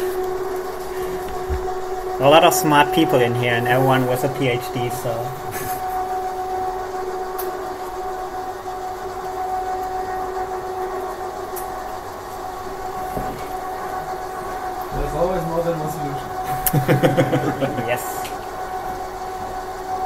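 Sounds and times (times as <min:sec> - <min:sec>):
steady hum with two tones: 0:00.0 - 0:20.0.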